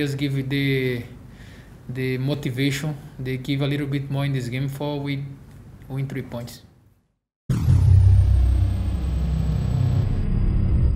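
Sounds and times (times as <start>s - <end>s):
deep bass rumble: 7.5s - 10.9s.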